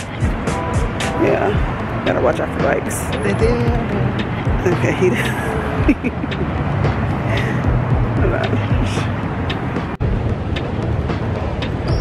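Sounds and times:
passing vehicles rumble: 0.0 - 12.0.

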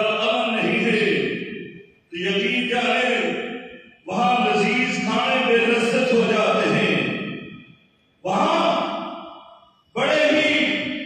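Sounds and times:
man chanting a sermon: 0.0 - 7.5, 8.2 - 11.0.

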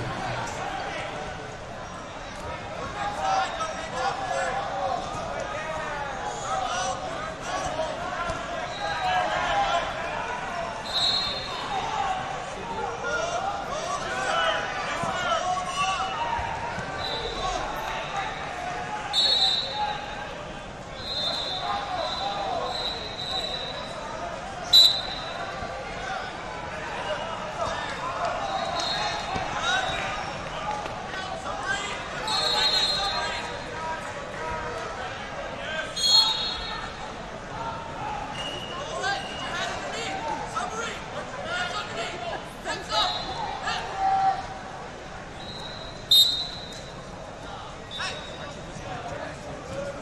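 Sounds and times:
crowd chatter: 0.0 - 50.0
referee whistle blasts: 10.8 - 11.8, 19.1 - 20.0, 21.0 - 24.0, 24.7 - 25.4, 28.5 - 29.3, 32.2 - 33.4, 35.9 - 36.9, 43.0 - 43.4, 45.4 - 47.0.

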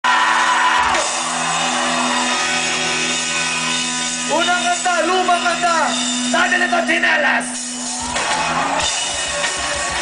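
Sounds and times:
crowd noise: 0.0 - 10.0
live rock band: 0.0 - 10.0.

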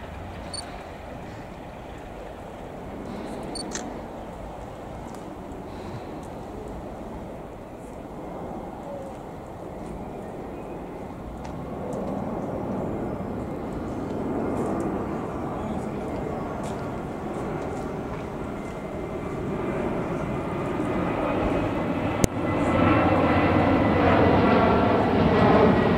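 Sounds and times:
diesel locomotive passing: 0.0 - 25.9.

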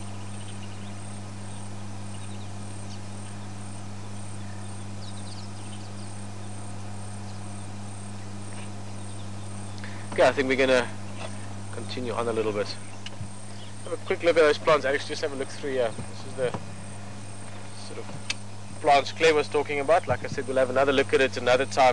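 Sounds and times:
constant low hum: 0.0 - 21.9
insects chirping: 0.0 - 21.9.

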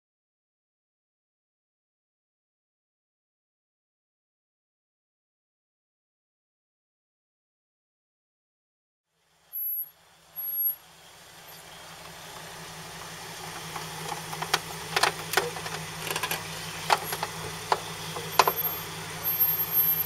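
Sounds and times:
engine running at low revs: 9.1 - 20.0
tyres throwing dirt and stones: 11.6 - 20.0.

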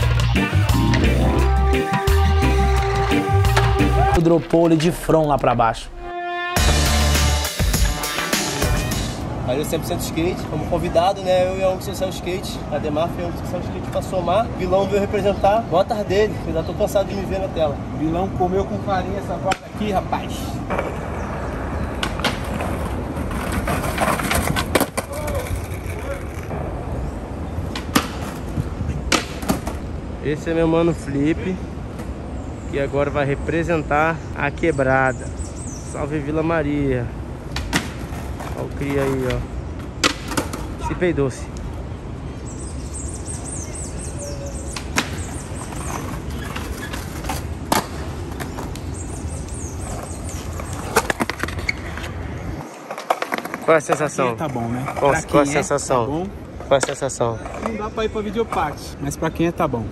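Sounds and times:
skateboard wheels rolling on concrete: 0.0 - 5.8, 6.6 - 33.0, 34.5 - 59.9
skateboard grinding on concrete: 20.7 - 26.6.

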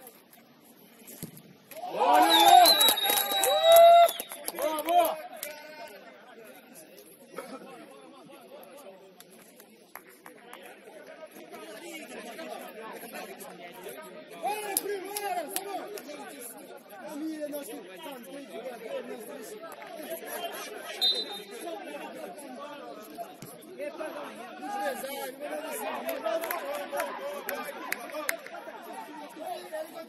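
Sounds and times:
chatter of voices: 4.5 - 30.0.

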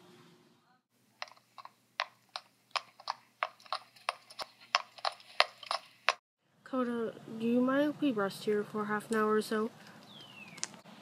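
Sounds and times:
horse hoofbeats on hard ground: 1.2 - 6.2.

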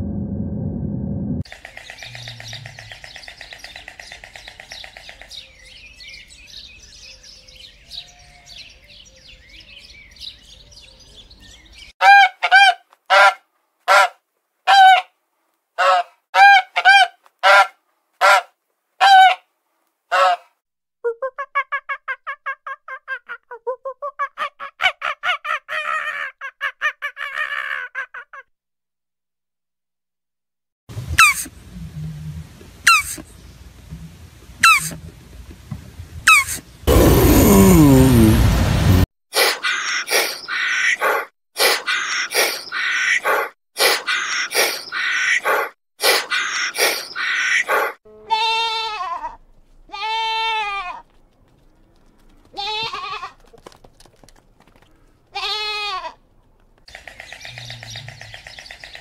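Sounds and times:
waterfowl honking: 32.9 - 33.2, 34.6 - 35.0.

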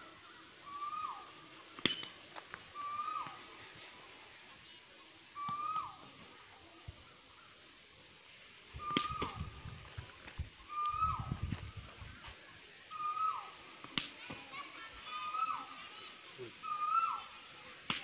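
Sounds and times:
bird calling: 0.0 - 4.7, 5.3 - 7.6, 8.6 - 17.9.

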